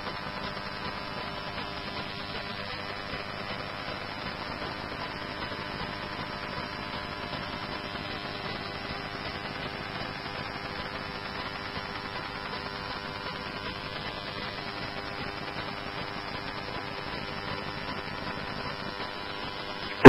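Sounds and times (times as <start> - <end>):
radio hiss and hum: 0.0 - 20.0.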